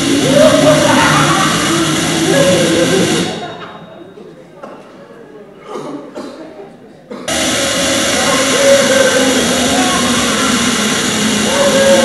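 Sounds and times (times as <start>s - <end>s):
loud steady machine noise: 0.0s - 3.8s, 7.3s - 12.0s.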